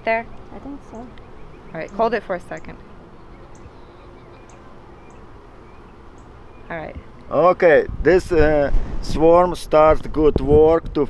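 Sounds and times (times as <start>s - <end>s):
honey bees humming: 0.0s - 7.7s
faint high chirps: 0.2s - 6.7s.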